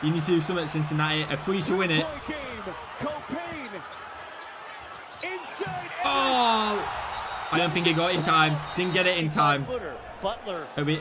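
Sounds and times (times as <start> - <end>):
arena crowd noise: 0.0 - 11.0
shouting voices: 1.2 - 11.0.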